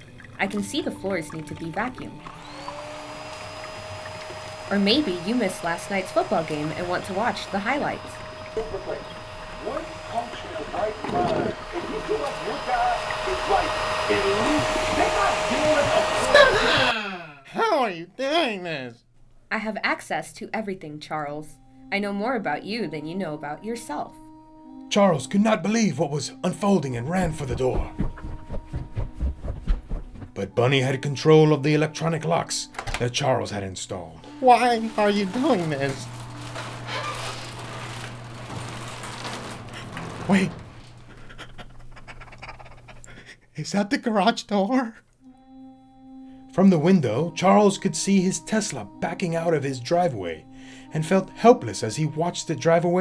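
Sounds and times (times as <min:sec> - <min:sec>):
voices: 0:00.4 - 0:02.2, 0:04.7 - 0:20.7, 0:34.2 - 0:36.2
garage door opener motor hum: 0:02.1 - 0:16.9, 0:34.2 - 0:41.9
rumbling hiss: 0:02.4 - 0:16.1.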